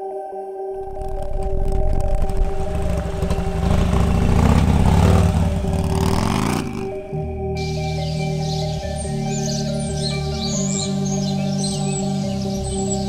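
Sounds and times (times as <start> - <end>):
ambient background music: 0.0 - 13.0
motorcycle engine revving: 0.8 - 13.0.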